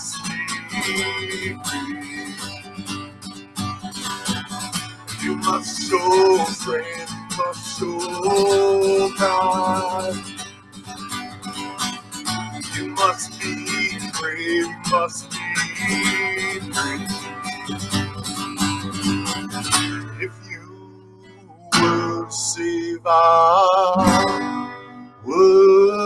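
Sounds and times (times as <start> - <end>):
man singing: 0.0 - 2.9, 5.1 - 10.3, 12.5 - 17.7, 19.9 - 24.6, 25.2 - 26.0
acoustic guitar strumming: 0.0 - 26.0.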